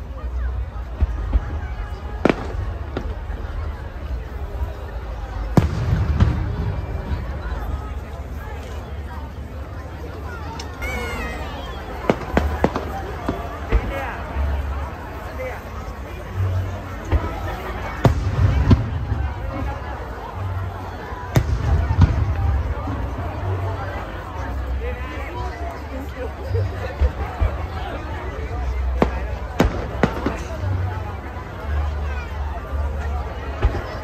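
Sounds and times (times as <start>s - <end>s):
crowd chatter: 0.0s - 34.0s
fireworks bangs: 0.9s - 3.9s, 5.4s - 7.6s, 12.0s - 14.5s, 28.9s - 30.8s.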